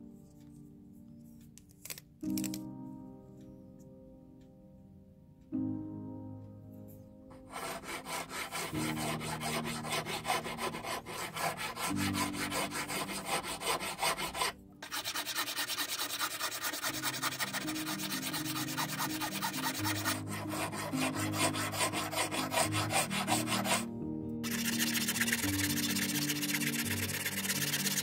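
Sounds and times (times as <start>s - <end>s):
hand file rasping on wood: 7.5s - 28.0s.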